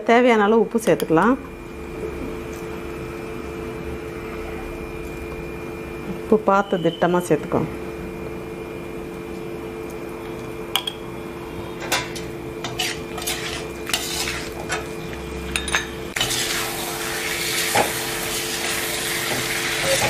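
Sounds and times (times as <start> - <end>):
steady hum: 0.0 - 20.0
metal spoon scraping pan: 11.9 - 14.9
food frying sizzle: 12.0 - 15.5, 16.1 - 20.0.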